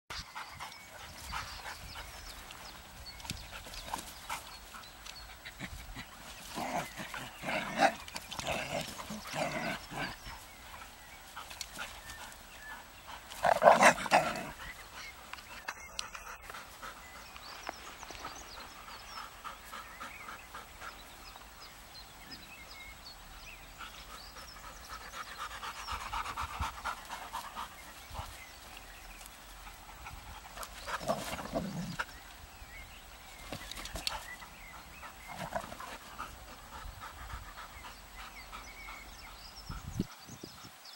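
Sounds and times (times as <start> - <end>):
dogs vocalizing while playing: 0.1 - 40.1.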